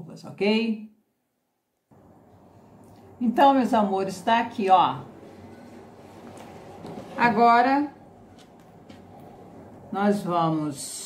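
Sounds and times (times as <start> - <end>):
fabric rustling in hands: 5.2 - 9.8.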